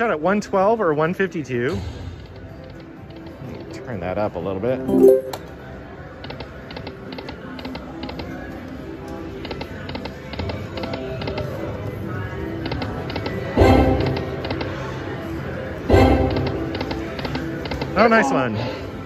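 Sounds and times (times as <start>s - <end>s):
slot machine music: 4.8s - 5.6s.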